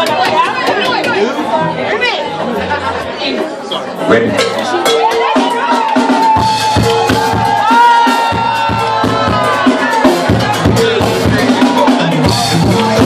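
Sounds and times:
live band playing: 0.0 - 13.0.

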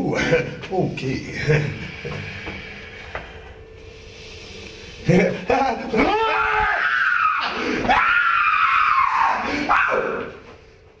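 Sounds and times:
man screaming in falsetto: 6.0 - 10.3.

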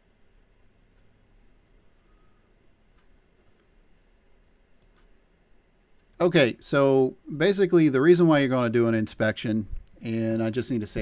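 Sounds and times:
computer mouse clicks: 4.8 - 5.2.

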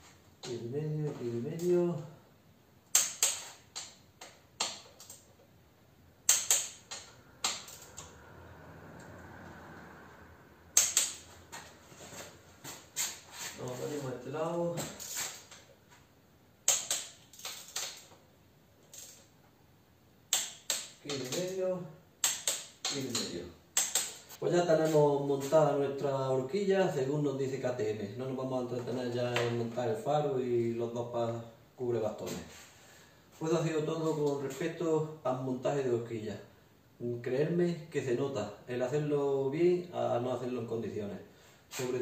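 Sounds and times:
wrench clicking: 6.3 - 8.1, 10.8 - 11.2, 16.7 - 18.1, 22.2 - 24.4.

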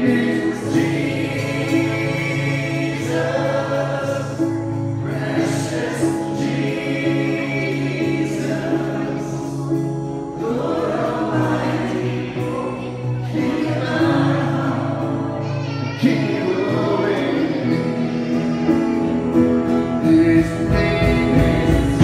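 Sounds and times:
acoustic guitars: 0.0 - 22.0
voices singing gospel song: 0.0 - 22.0.

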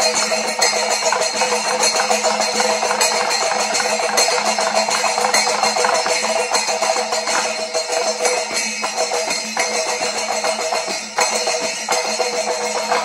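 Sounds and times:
brass cymbals clashing: 0.0 - 13.0
hand drums beaten rapidly: 0.0 - 13.0.

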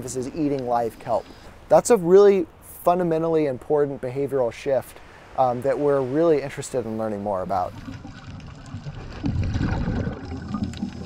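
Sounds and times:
water bubbling underwater: 7.6 - 11.0.

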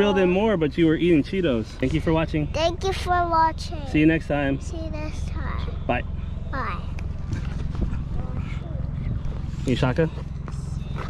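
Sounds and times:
outboard motor running: 0.0 - 11.0.

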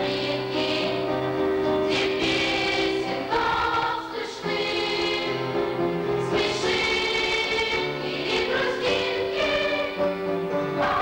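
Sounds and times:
girls' choir singing held notes: 0.0 - 11.0.

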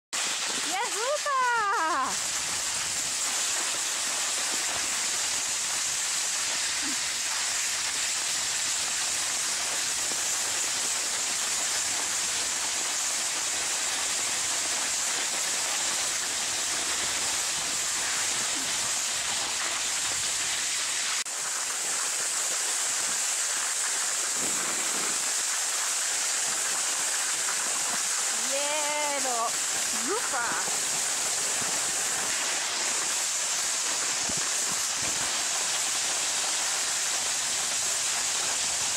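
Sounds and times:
sled runners hissing over snow: 0.2 - 38.9.

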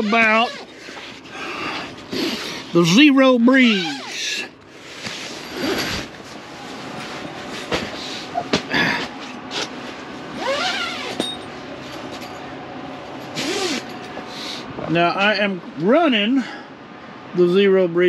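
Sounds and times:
air conditioner running: 0.0 - 18.0
tent fabric handled: 9.2 - 11.2.

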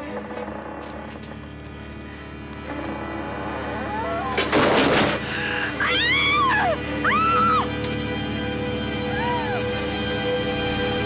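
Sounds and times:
low drone: 0.0 - 11.0
woman screaming: 5.8 - 7.7, 9.1 - 9.7.

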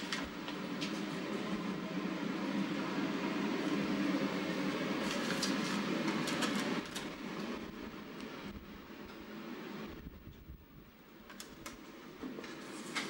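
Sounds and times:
papers rustling: 5.0 - 7.2.

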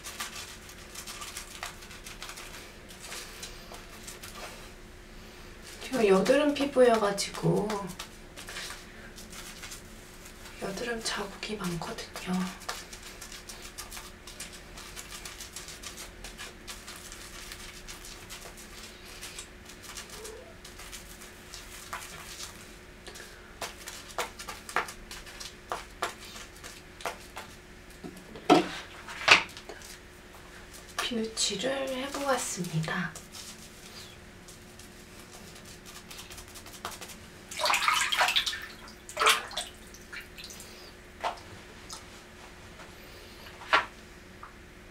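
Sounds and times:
brush scrubbing skin: 0.0 - 4.8, 5.6 - 27.6, 28.7 - 40.4
soapy water splashing and squishing: 34.6 - 40.7.

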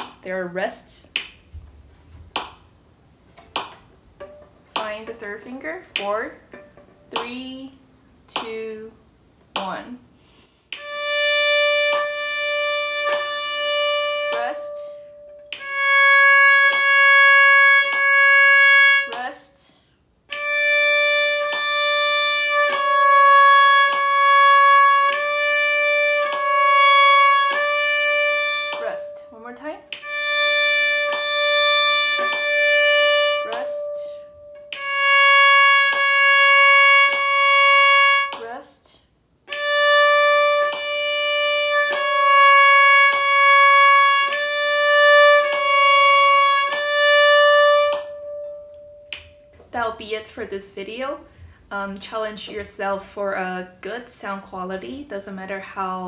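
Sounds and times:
bowed viola notes: 10.7 - 19.6, 20.3 - 38.8, 39.5 - 50.2.

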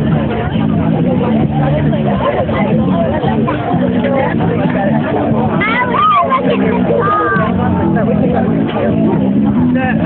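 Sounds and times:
people talking and calling out: 0.0 - 10.0.

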